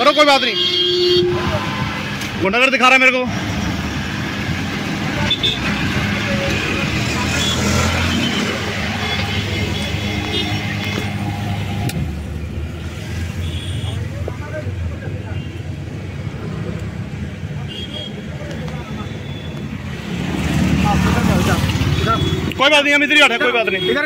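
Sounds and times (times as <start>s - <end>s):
busy road traffic: 0.0s - 24.0s.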